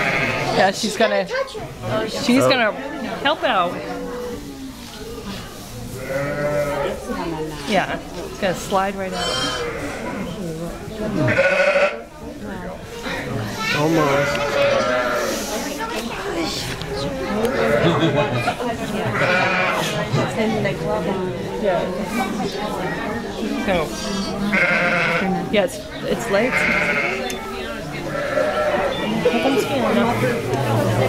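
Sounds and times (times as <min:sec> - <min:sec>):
sheep bleating: 0:00.0 - 0:00.6, 0:09.1 - 0:10.2, 0:11.2 - 0:12.0, 0:14.0 - 0:15.3, 0:19.2 - 0:19.9, 0:24.5 - 0:25.3, 0:26.4 - 0:27.3, 0:28.1 - 0:29.9
onlookers chattering and exclaiming: 0:00.0 - 0:31.0
children's voices: 0:01.1 - 0:08.8, 0:12.2 - 0:31.0.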